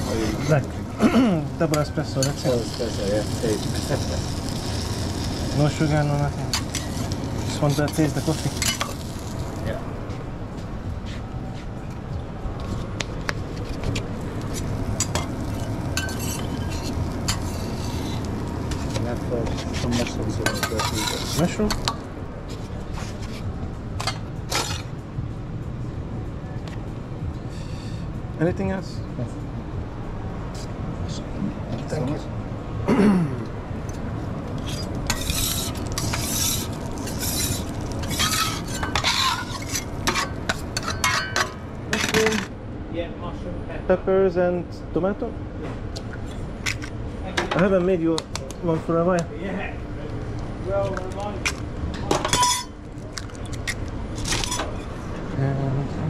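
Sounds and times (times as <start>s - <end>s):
low kitchen hum: 0.0s - 28.4s, 33.4s - 43.9s, 44.6s - 56.0s
tongs clinking on metal pans: 20.4s - 21.2s, 35.1s - 42.5s, 52.2s - 52.8s.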